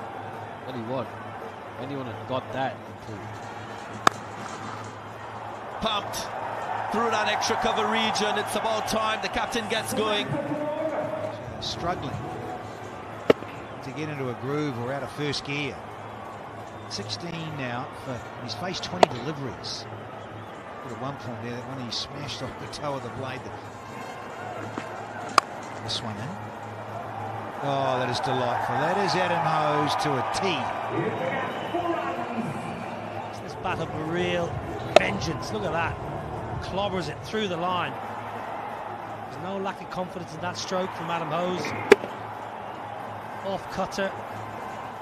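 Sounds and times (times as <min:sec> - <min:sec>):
cricket bat striking ball: 0:04.0 - 0:04.8, 0:13.2 - 0:13.6, 0:24.8 - 0:25.6, 0:34.8 - 0:35.3, 0:41.8 - 0:42.2.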